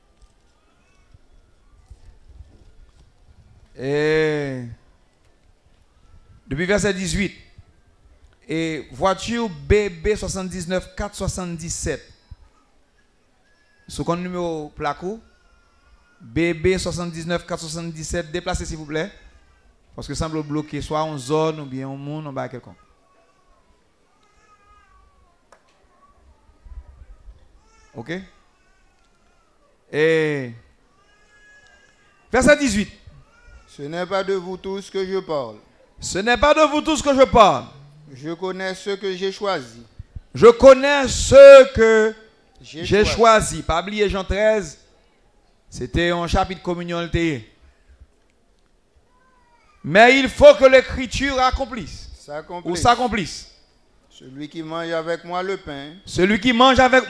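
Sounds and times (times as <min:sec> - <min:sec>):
man preaching amplified: 0:06.5 - 0:07.5, 0:08.5 - 0:12.0, 0:13.9 - 0:15.3, 0:16.2 - 0:19.2, 0:20.0 - 0:22.8, 0:32.3 - 0:33.1, 0:33.7 - 0:44.8, 0:45.7 - 0:47.5, 0:49.9 - 0:53.5, 0:54.2 - 0:57.0.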